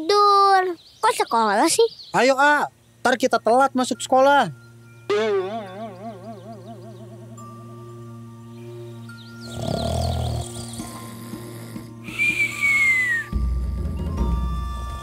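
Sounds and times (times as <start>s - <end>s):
background music with held tones: 3.2s - 15.0s
burst of chirps: 8.7s - 13.3s
falling whistle: 12.1s - 15.0s.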